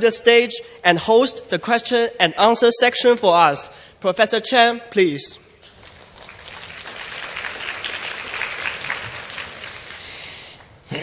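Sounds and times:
audience applauding: 5.6s - 10.4s.

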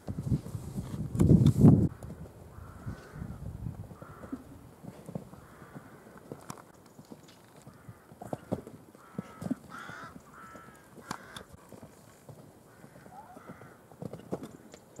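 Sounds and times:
horse hooves cantering on sand: 3.7s - 15.0s
pitched calls: 12.7s - 13.7s.

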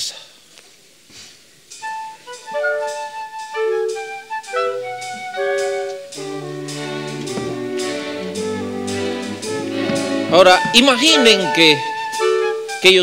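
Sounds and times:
orchestra high held melody: 1.8s - 13.0s
orchestra low sustained notes: 1.8s - 13.0s.

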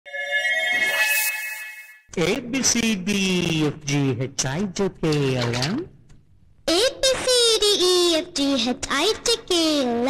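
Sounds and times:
synthesized tone chord: 0.0s - 2.1s.

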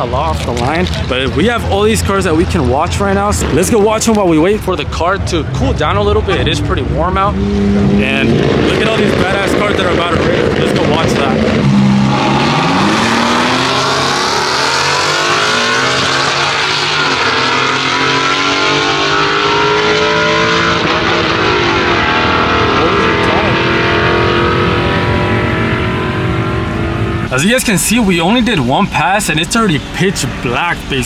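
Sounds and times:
drag racing cars accelerating: 0.0s - 31.0s.

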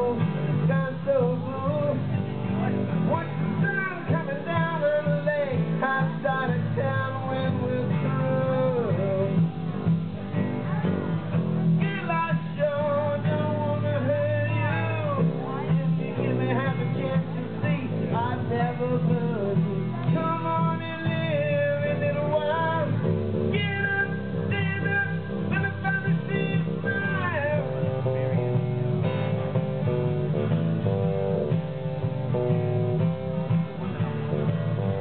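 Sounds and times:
electric bass: 0.0s - 35.0s
sliding lead melody: 0.0s - 35.0s
strummed acoustic guitar: 0.0s - 35.0s.

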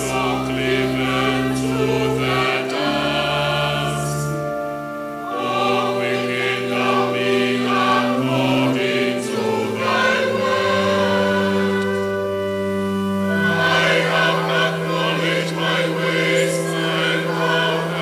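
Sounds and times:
church choir singing: 0.0s - 18.0s
held low organ notes: 0.0s - 18.0s.

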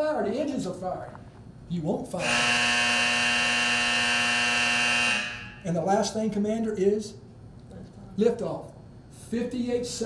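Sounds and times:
alarm buzzing tone: 2.2s - 5.7s.

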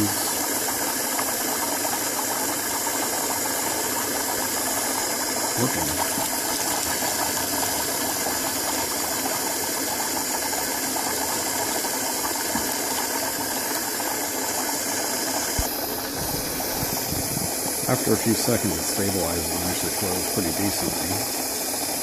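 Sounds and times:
fuel pump buzzing rattle: 0.0s - 22.0s
liquid bubbling: 0.0s - 22.0s.

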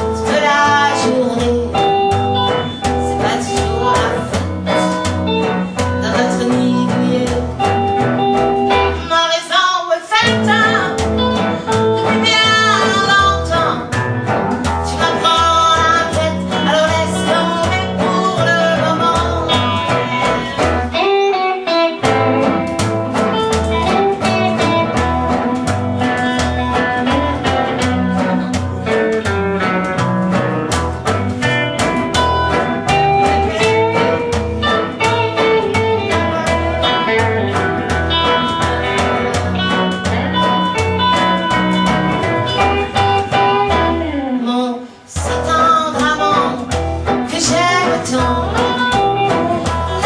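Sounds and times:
walking upright bass: 0.0s - 9.4s, 10.2s - 50.0s
guitar lead line: 0.0s - 50.0s.

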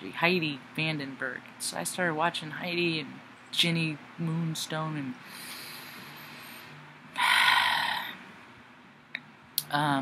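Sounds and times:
woman breathing: 5.2s - 8.2s.

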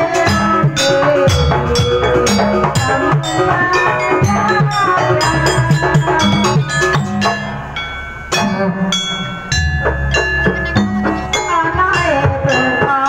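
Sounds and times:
hand drum strokes: 0.0s - 13.0s
metal keyed percussion ringing: 0.0s - 13.0s.

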